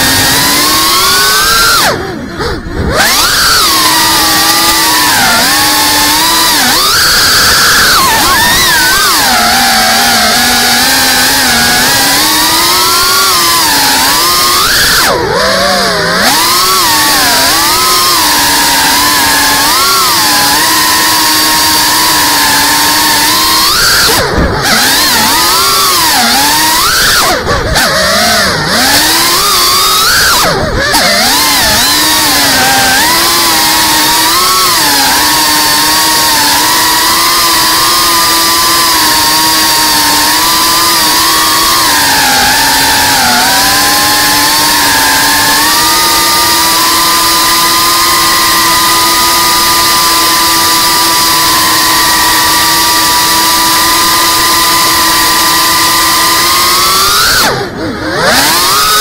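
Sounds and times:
quadcopter motors whining: 0.0s - 59.0s.

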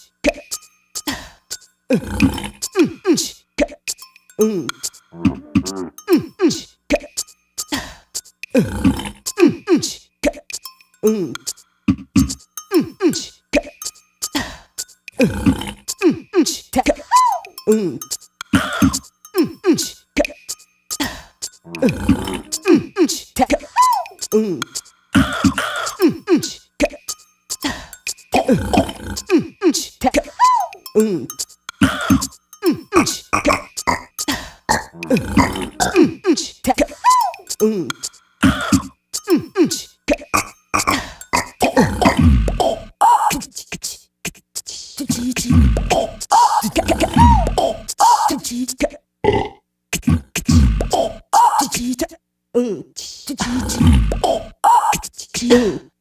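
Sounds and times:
beatboxing: 0.0s - 49.0s, 49.9s - 55.9s
person making um sounds: 0.2s - 49.0s, 49.9s - 56.0s.

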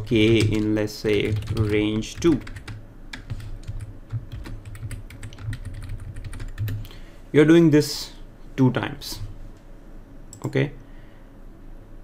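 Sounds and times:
computer keyboard typing: 0.0s - 6.9s.

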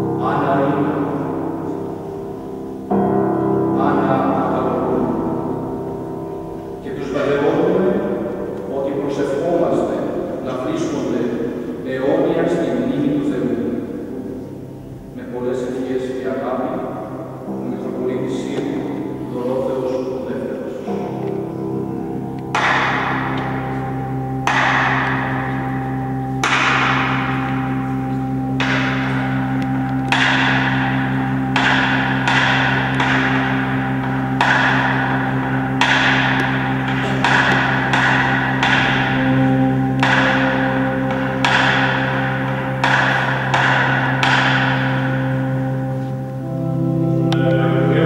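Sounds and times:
low choir-like drone: 0.0s - 48.0s.

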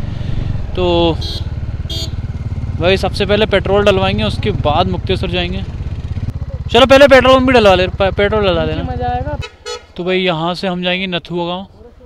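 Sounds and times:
motorcycle engine at low revs: 0.0s - 9.6s.

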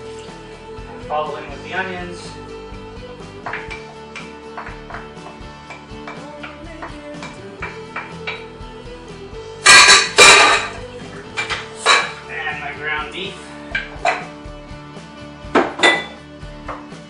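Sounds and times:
background music: 0.0s - 17.0s
kitchenware clattering: 3.5s - 8.5s, 9.6s - 12.2s, 13.7s - 14.4s, 15.5s - 16.8s.

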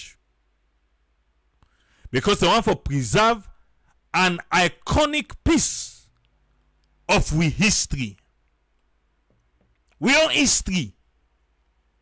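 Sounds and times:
man speaking: 0.0s - 0.2s, 2.1s - 6.1s, 7.1s - 8.3s, 10.0s - 11.0s
faint low hum: 0.0s - 12.0s.

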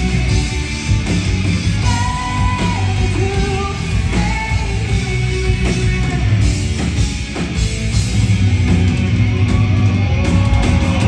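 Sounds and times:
rock band playing: 0.0s - 11.0s.

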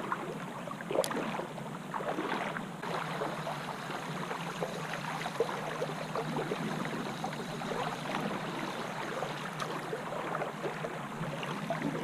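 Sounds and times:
creek water gurgling: 0.0s - 12.0s.

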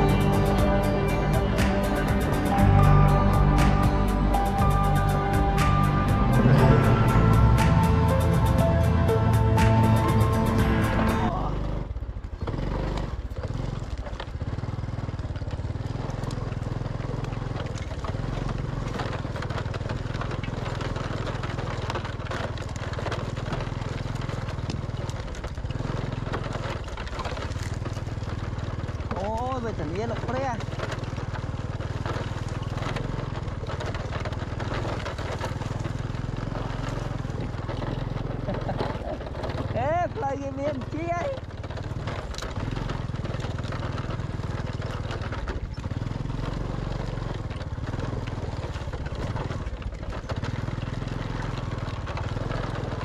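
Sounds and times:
motorbike engine running: 0.0s - 53.0s
rattle over rough ground: 0.0s - 53.0s.

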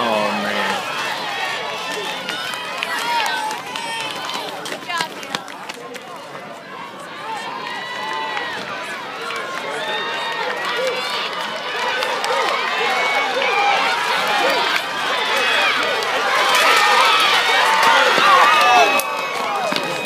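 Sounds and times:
crowd shouting: 0.0s - 20.0s.

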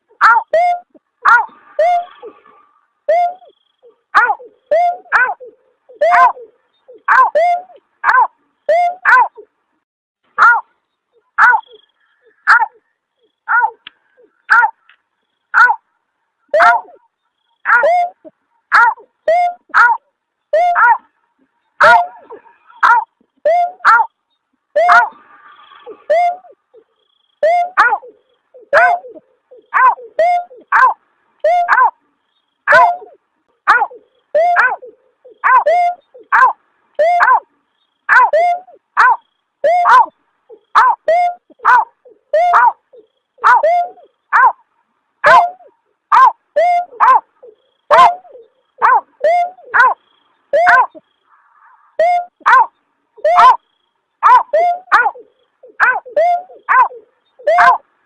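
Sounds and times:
snipe yelping call: 0.2s - 9.5s, 10.4s - 15.8s, 16.5s - 21.1s, 21.7s - 32.0s, 32.6s - 44.6s, 45.2s - 57.9s.

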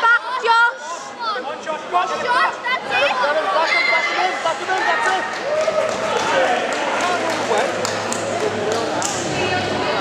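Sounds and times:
crowd chattering in sports hall: 0.0s - 10.0s.

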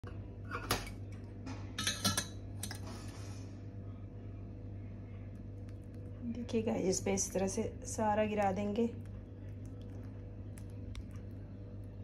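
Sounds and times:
low steady hum: 0.0s - 12.0s
kitchenware clinking on stone: 1.8s - 2.8s.

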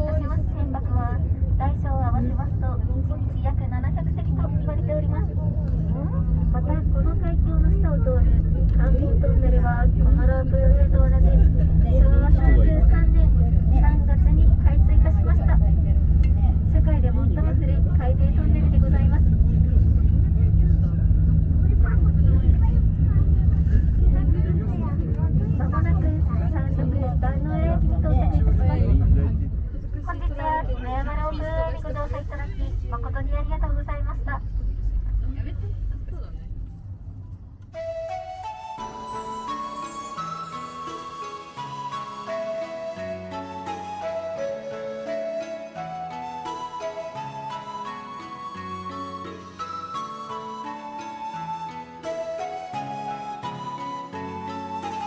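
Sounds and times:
voices talking: 0.0s - 37.2s
gondola cabin rumble and hum: 0.0s - 55.0s.

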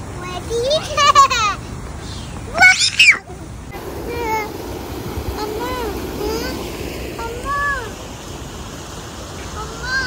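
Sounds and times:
rushing outdoor noise: 0.0s - 10.0s.

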